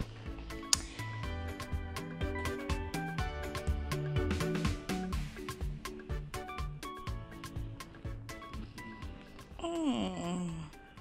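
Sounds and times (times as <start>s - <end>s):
quiet background music: 0.0s - 11.0s
person moaning: 9.5s - 11.0s.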